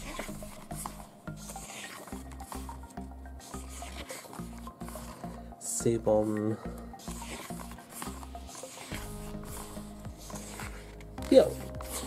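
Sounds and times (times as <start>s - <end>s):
photobook pages turning: 0.0s - 5.5s, 7.0s - 12.0s.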